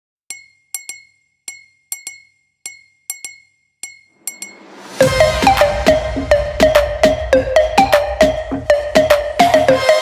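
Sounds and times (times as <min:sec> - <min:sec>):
glass bottle clinks: 0:00.3 - 0:04.6.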